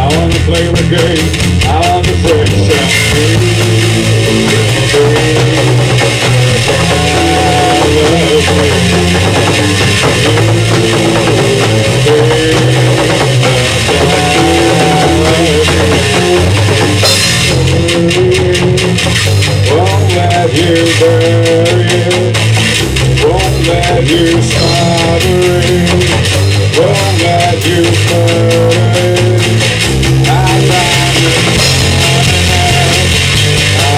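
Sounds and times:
live rock band playing loud: 0.0s - 33.9s.

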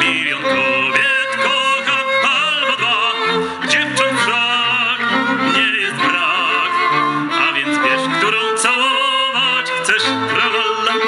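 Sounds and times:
operatic tenor singing: 0.0s - 11.0s
string quartet: 0.0s - 11.0s.

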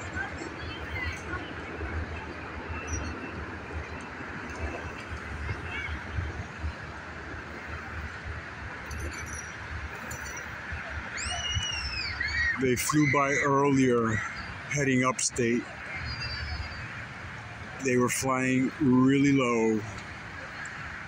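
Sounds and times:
outdoor rumble and hiss: 0.0s - 21.0s.

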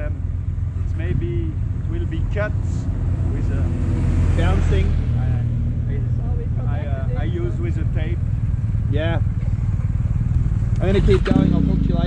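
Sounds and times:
men talking indistinctly: 0.0s - 0.2s, 0.8s - 9.4s, 10.6s - 12.0s
motorcycle engine idling: 0.0s - 3.4s, 5.6s - 12.0s.

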